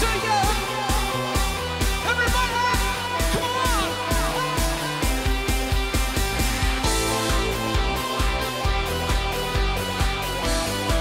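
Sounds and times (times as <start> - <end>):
person singing: 0.0 - 5.4
electric guitar: 0.0 - 11.0.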